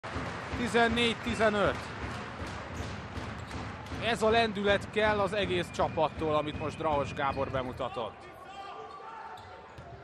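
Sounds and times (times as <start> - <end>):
crowd noise in arena: 0.0 - 10.0.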